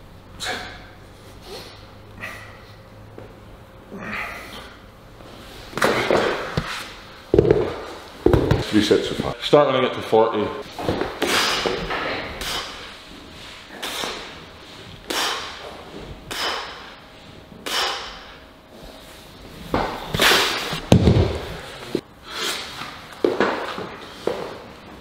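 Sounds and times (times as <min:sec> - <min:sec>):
heavy thud: 0:19.8 - 0:21.6.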